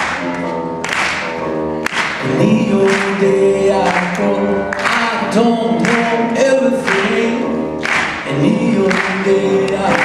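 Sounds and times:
grand piano: 0.0s - 10.0s
man singing: 2.2s - 10.0s.

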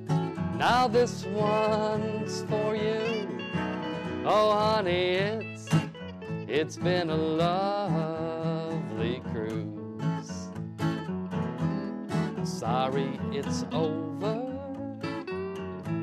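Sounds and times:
acoustic guitars playing slow blues: 0.0s - 16.0s.

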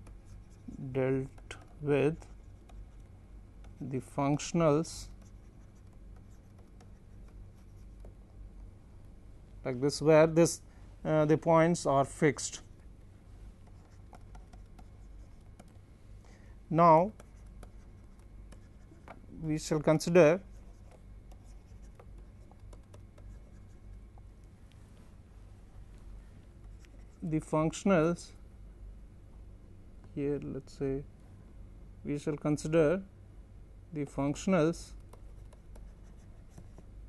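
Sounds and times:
stylus scratching on a tablet: 0.0s - 8.4s, 13.6s - 15.8s, 16.8s - 24.1s, 26.6s - 27.3s, 34.9s - 36.9s
steady low hum: 0.0s - 37.0s
stylus tapping on pen tablet: 13.6s - 15.8s, 20.7s - 23.6s.

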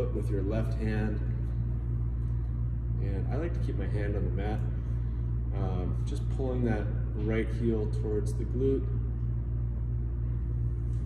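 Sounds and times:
ventilation system rumble: 0.0s - 11.0s.

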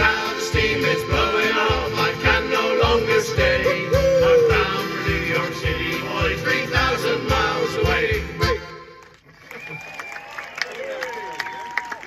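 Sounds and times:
audience clapping and cheering: 9.0s - 12.0s.

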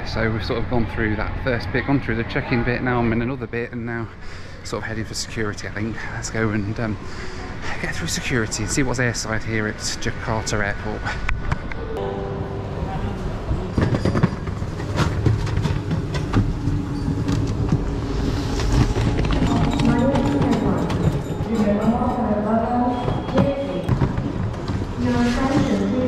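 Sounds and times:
people talking: 7.6s - 11.2s, 12.7s - 13.8s, 19.5s - 23.9s, 25.0s - 26.0s.

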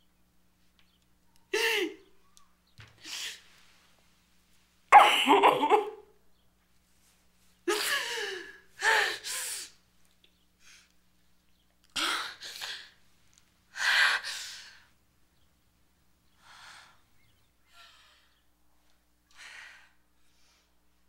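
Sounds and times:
woman sobbing: 1.5s - 2.1s, 5.0s - 6.1s, 7.6s - 9.8s.

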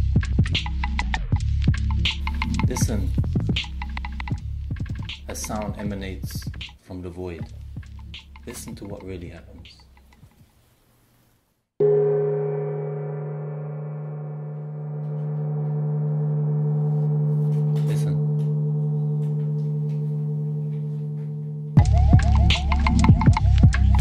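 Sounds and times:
gong struck and ringing: 11.8s - 21.9s.

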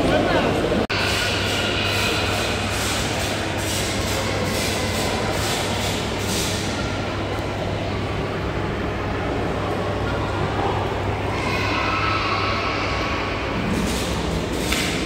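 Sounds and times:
low hum of indoor hall: 0.0s - 15.0s.

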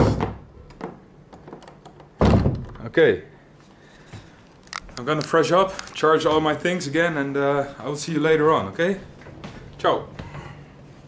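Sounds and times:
door thunking shut: 2.2s - 2.9s.

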